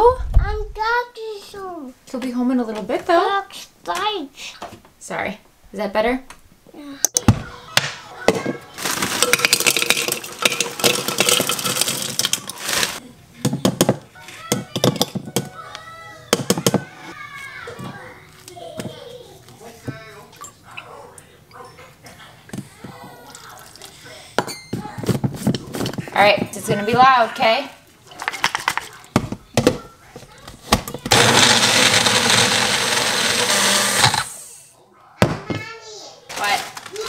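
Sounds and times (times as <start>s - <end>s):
frozen berries clattering into plastic cup: 8.8s - 13.0s, 36.3s - 37.0s.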